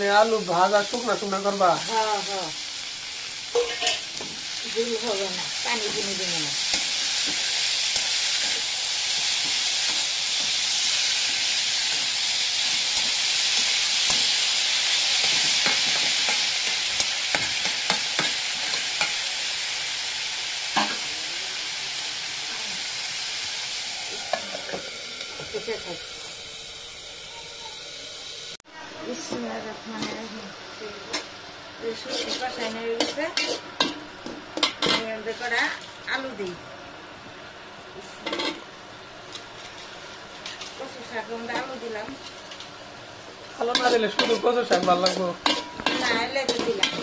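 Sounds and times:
vegetables sizzling in oil: 0:00.0 - 0:47.0
spatula scraping a wok: 0:03.5 - 0:19.2, 0:31.1 - 0:35.6, 0:43.6 - 0:47.0.

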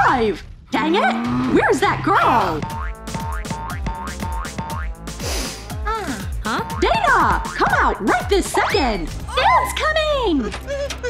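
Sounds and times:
bouncy comic music: 0:00.0 - 0:11.0.

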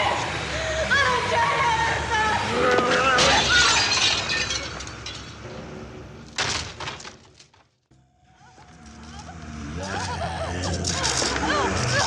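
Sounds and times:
window glass shattering: 0:02.8 - 0:05.5, 0:06.2 - 0:07.6
woman's frightened cries: 0:09.9 - 0:12.0.

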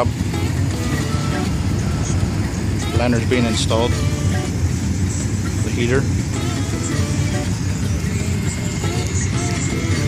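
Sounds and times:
engine-driven equipment rumbling: 0:00.0 - 0:10.0.

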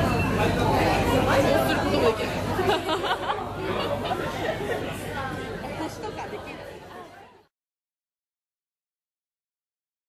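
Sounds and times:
people chatting: 0:00.0 - 0:07.5
laughter: 0:02.5 - 0:05.0.

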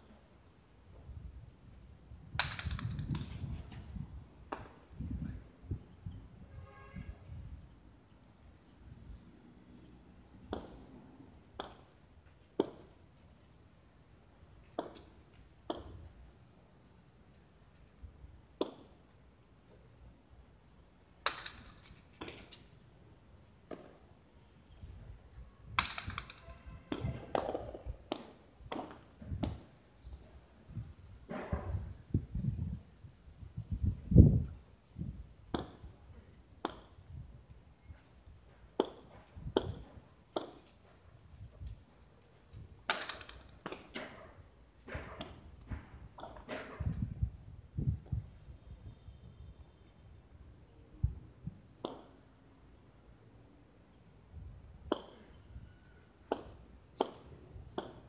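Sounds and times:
ball striking wall crack: 0:10.5 - 0:10.8, 0:21.2 - 0:22.4, 0:25.8 - 0:29.6, 0:54.9 - 0:55.2, 0:56.3 - 0:58.0.

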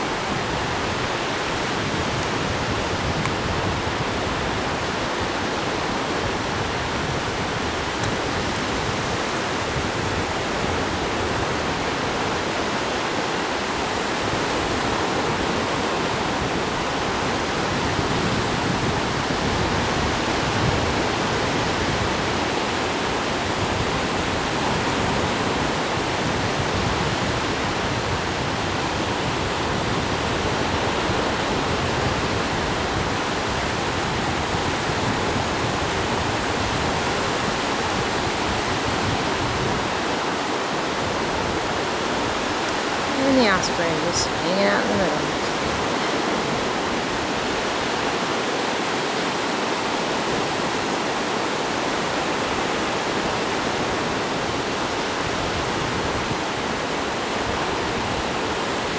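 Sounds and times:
ocean surf breaking: 0:00.0 - 0:58.9.

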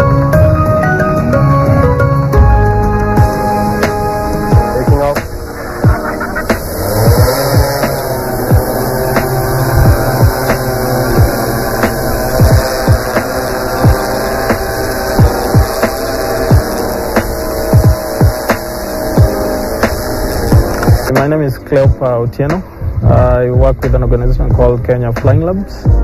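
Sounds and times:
drone rotor hum: 0:00.0 - 0:26.0.

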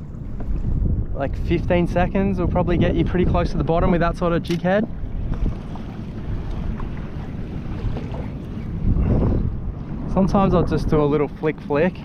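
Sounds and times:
water lapping at a kayak: 0:00.0 - 0:12.0
wind buffeting microphone: 0:00.0 - 0:12.0.

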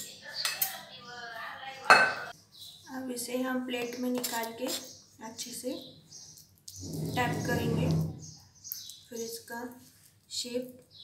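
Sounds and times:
spoon scraping a pan: 0:06.7 - 0:08.4.

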